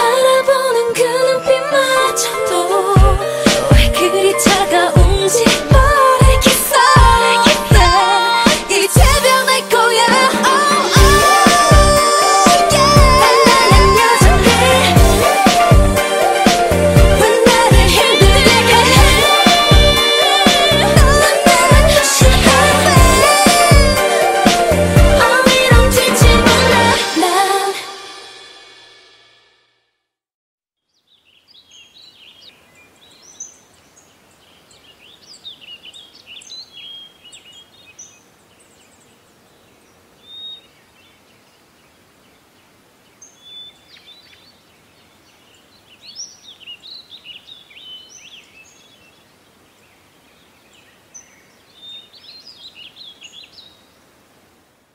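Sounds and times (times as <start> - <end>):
pop song: 0.0 - 28.7
small birds chirping: 30.8 - 54.2
faint steady hiss: 30.9 - 54.9.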